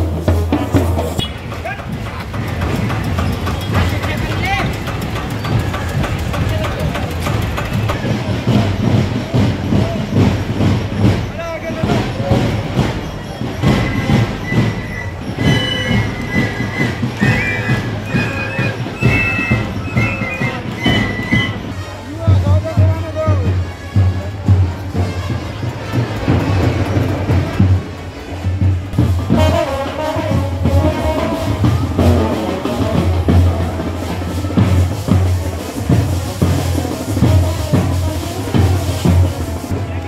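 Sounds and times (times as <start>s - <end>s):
crowd chatter: 0.0s - 40.0s
side drums beating: 0.0s - 40.0s
high held melody: 13.6s - 21.8s.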